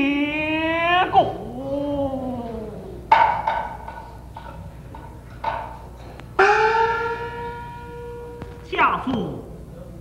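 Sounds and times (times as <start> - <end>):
drum strikes: 6.4 - 8.5
small gong ringing: 6.4 - 8.7.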